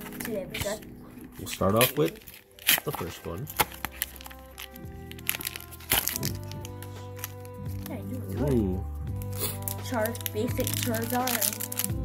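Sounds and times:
background music: 0:00.0 - 0:12.0
plastic packaging crackling: 0:00.0 - 0:12.0.

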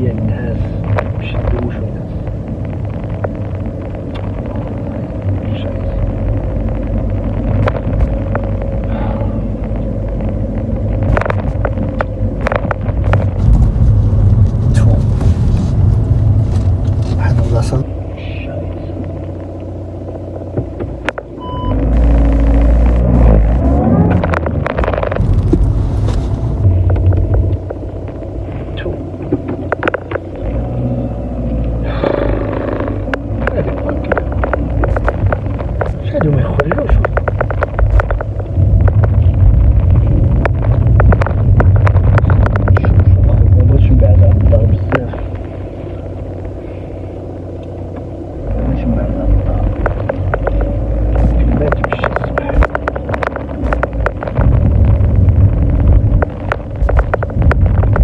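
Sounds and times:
road and engine rumble in car: 0:00.0 - 0:58.0.

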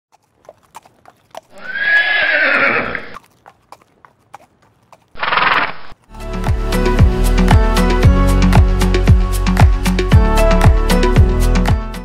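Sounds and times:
hoof clops: 0:00.1 - 0:06.1
horse whinnying: 0:01.5 - 0:03.2, 0:05.2 - 0:06.0.

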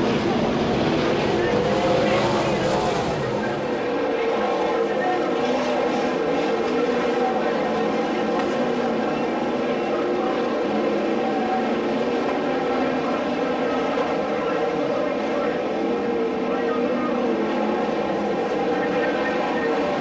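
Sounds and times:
race car engines droning: 0:00.0 - 0:20.0.

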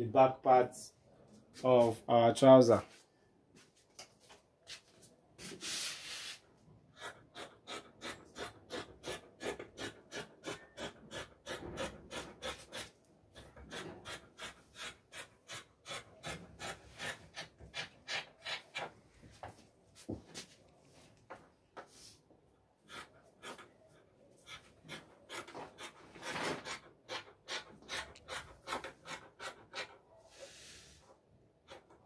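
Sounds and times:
short rubbing sound: 0:05.4 - 0:06.4.

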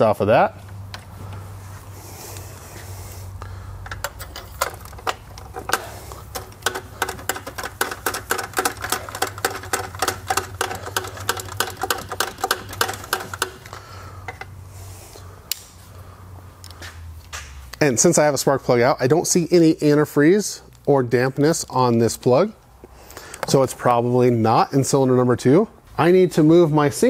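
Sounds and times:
steady low hum: 0:00.0 - 0:18.7
socket ratchet clicking: 0:03.8 - 0:14.5.

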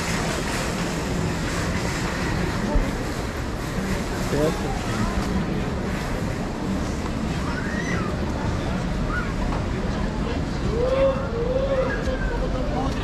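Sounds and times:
passers-by talking: 0:00.0 - 0:13.0.

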